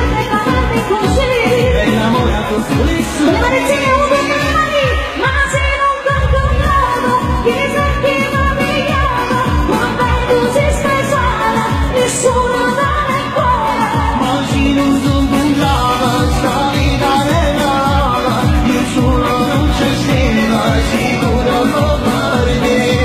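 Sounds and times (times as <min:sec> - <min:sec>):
amplified band with steady beat: 0:00.0 - 0:23.0
woman singing pop song: 0:00.0 - 0:23.0.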